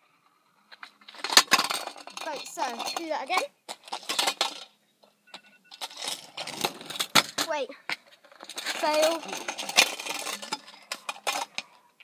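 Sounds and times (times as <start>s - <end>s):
kick scooter clattering: 0.7s - 4.7s, 5.8s - 11.7s.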